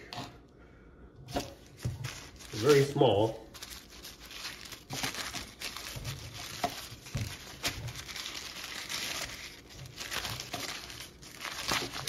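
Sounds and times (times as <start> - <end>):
paper wrapper crinkling: 1.4 - 12.0.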